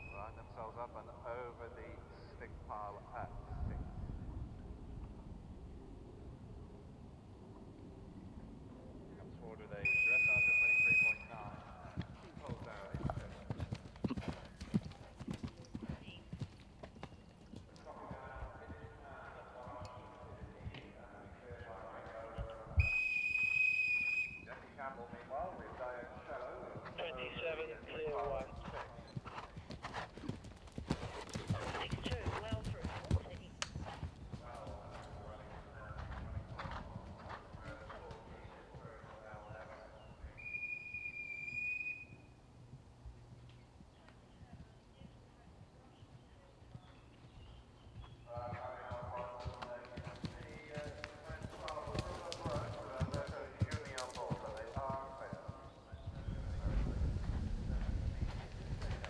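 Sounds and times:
horse hoofbeats galloping on turf: 9.9s - 40.2s, 42.6s - 59.0s.

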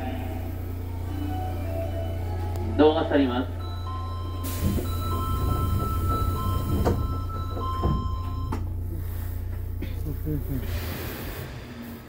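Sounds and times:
subway train rumble: 0.0s - 12.0s.

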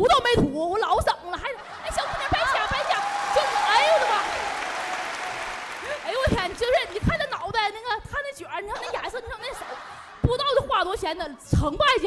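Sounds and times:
audience applauding: 1.9s - 7.4s.

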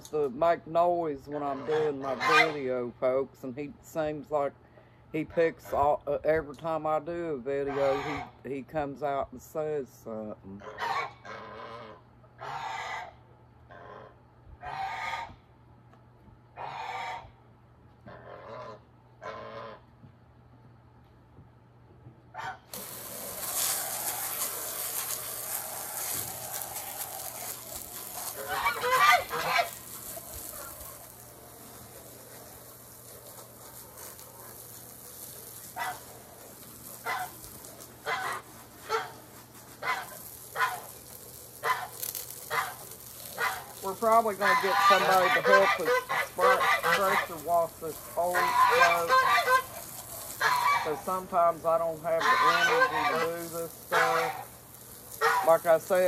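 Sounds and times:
hose spraying onto wooden deck: 0.0s - 10.3s, 22.6s - 56.0s
geese honking: 1.3s - 2.7s, 7.6s - 8.3s, 10.6s - 15.4s, 16.6s - 17.3s, 18.1s - 19.9s, 23.4s - 56.0s.

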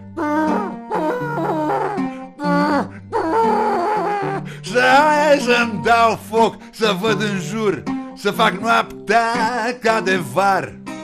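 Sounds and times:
man singing wordlessly: 4.5s - 10.8s.

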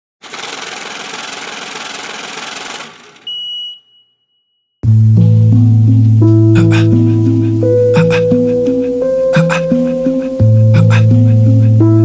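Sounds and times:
high steady beep: 3.3s - 4.6s.

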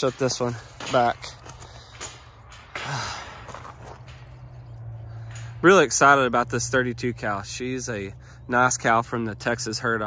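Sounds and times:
metal gate clinks: 0.0s - 7.9s.

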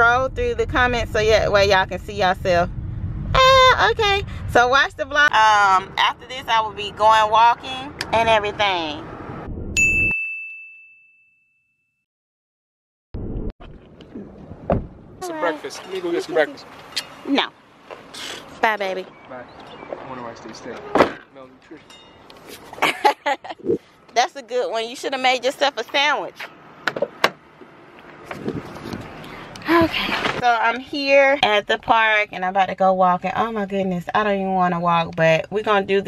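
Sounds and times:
road noise inside moving car: 0.0s - 9.5s, 23.8s - 36.0s
faint low rumble: 0.0s - 9.8s
bright bell-like ding: 9.8s - 11.7s.

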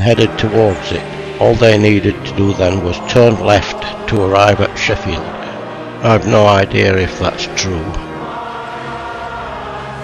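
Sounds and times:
choir singing sustained chords: 0.0s - 10.0s.

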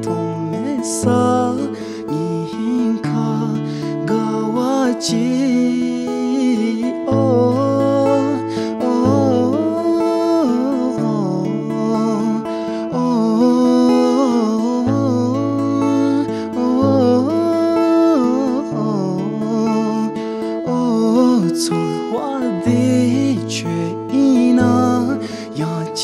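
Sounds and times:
acoustic guitar: 0.0s - 26.0s
man singing slowly: 0.0s - 26.0s.

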